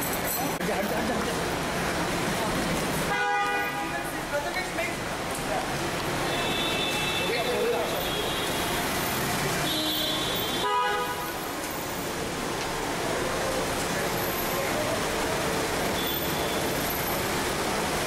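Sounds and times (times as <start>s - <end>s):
crowd noise: 0.0s - 18.0s
steady traffic: 0.0s - 18.0s
car horn: 3.1s - 4.0s, 6.2s - 8.9s, 9.6s - 11.5s, 16.0s - 16.8s.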